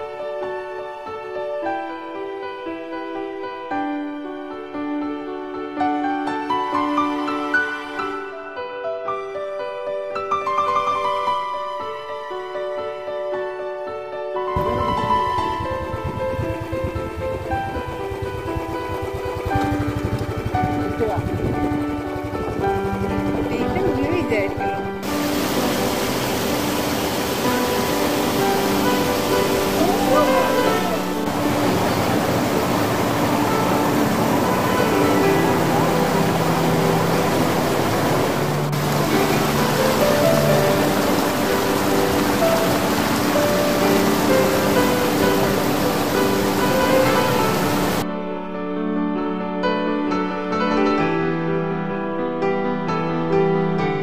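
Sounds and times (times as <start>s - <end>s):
background music: 0.0s - 54.0s
waterfall rushing over rocks: 25.0s - 48.0s.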